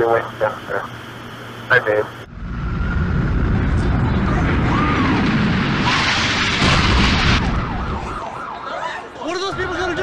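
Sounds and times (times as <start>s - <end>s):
loud low rumbling: 2.3s - 8.0s.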